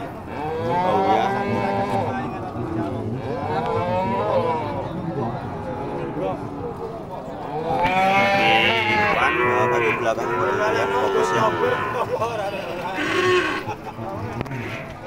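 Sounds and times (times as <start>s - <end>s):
cattle mooing: 0.3s - 2.3s, 2.9s - 6.5s, 7.4s - 15.0s.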